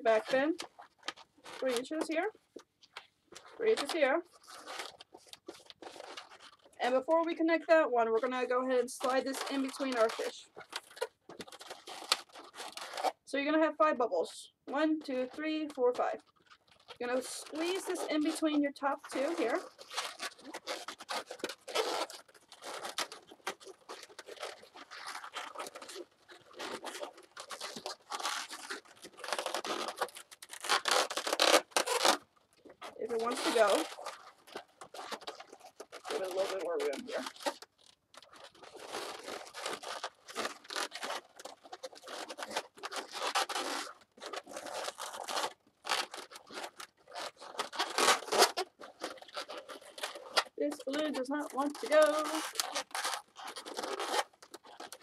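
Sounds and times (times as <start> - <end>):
balloons squeaking and rubbing: 0.0 - 55.0.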